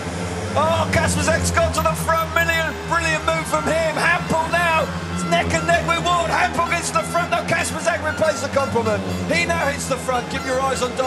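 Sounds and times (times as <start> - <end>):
voice: 0.6 - 11.0.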